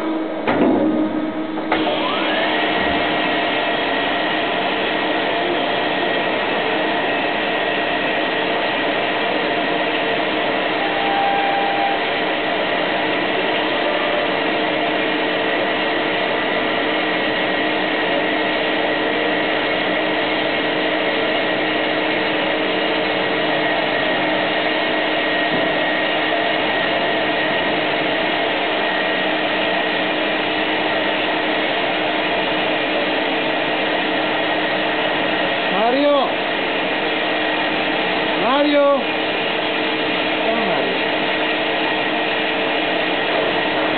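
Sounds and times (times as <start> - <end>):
short higher tone: 10.6 - 12.4.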